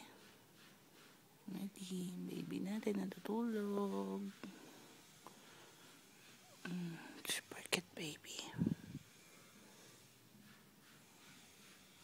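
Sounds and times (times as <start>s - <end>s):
person whispering: 6.6s - 8.9s.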